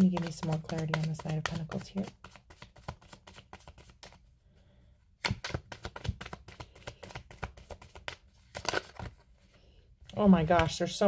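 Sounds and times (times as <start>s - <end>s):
cards being shuffled: 0.0s - 4.3s, 5.2s - 9.5s, 10.2s - 10.9s.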